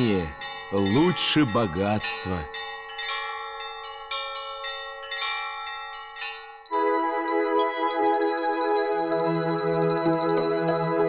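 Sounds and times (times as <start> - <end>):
bells pealing: 0.0 - 11.0.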